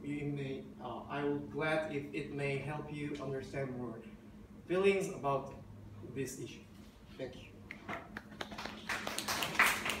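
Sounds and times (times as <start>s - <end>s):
audience clapping: 8.1s - 10.0s.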